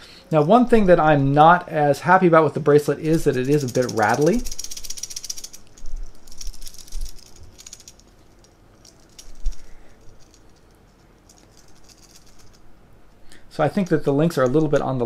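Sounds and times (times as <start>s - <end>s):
metal watch bracelet rattling: 3.0s - 13.2s.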